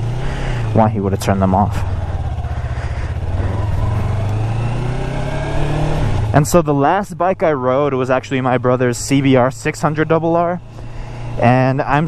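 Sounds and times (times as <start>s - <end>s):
motorcycle engine at low revs: 0.0s - 12.0s.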